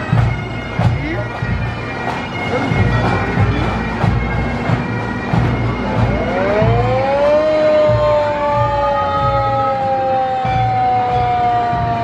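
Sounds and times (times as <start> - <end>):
fire truck siren wailing: 0.0 - 12.0.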